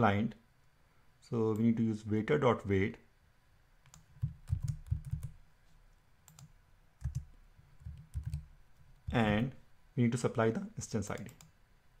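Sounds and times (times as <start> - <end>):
computer keyboard typing: 3.8 - 5.4, 6.3 - 9.4, 11.1 - 11.5.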